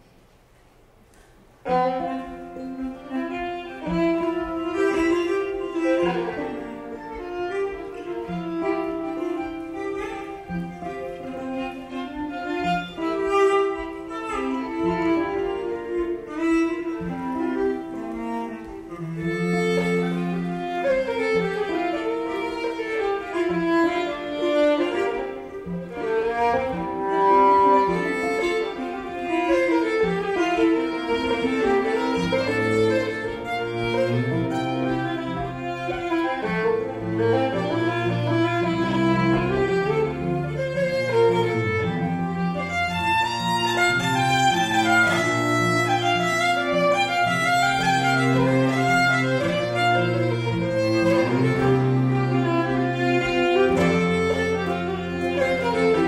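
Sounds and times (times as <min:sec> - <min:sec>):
cello: 0:01.1 - 0:56.0
fiddles playing: 0:01.2 - 0:56.0.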